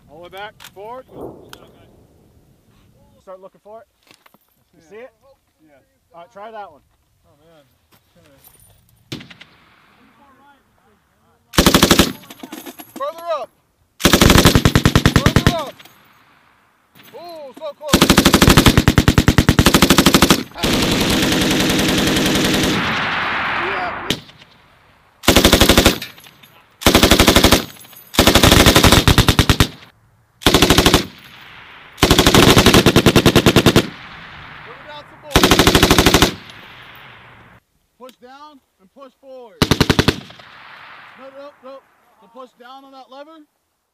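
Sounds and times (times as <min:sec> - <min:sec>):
rolling gunshot echo: 0:01.1 - 0:02.3
machine gun bursts: 0:11.6 - 0:12.4, 0:14.0 - 0:15.8, 0:17.9 - 0:22.8, 0:25.2 - 0:26.2, 0:26.8 - 0:29.8, 0:30.5 - 0:31.2, 0:32.0 - 0:33.9, 0:35.4 - 0:36.5.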